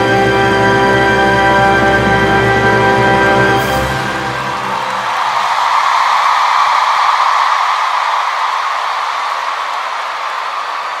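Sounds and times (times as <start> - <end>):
audience cheering: 0.0 - 11.0
audience applauding: 2.9 - 11.0.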